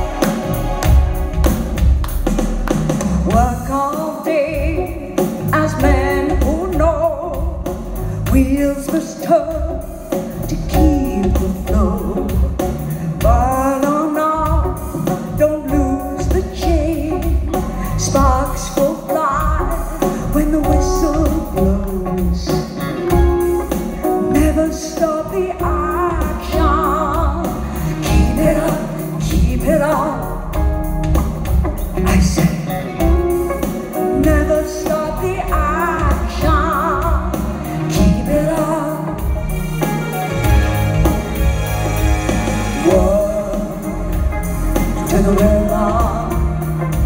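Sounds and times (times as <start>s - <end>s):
drum kit beat: 0.0s - 47.0s
live band music: 0.0s - 47.0s
woman singing: 3.2s - 30.7s, 32.0s - 39.6s, 42.8s - 47.0s.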